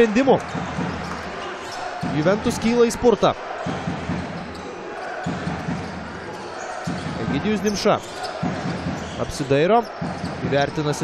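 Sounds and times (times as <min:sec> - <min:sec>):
basketball bouncing on court: 0:00.4 - 0:02.8, 0:03.5 - 0:10.8.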